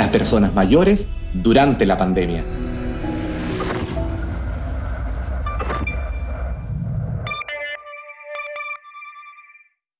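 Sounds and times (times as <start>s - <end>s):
deep rumble: 1.1s - 7.4s.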